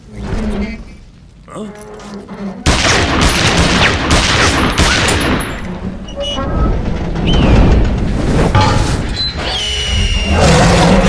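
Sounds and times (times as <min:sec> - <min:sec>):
heavy rapid gunfire with booms: 0:02.7 - 0:05.4.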